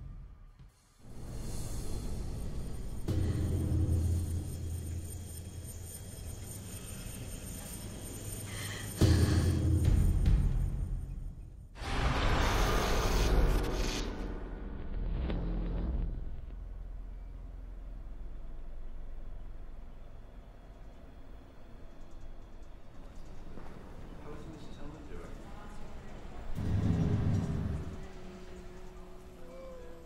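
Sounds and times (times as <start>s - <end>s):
low rumble: 9.0s - 21.7s, 25.5s - 29.3s.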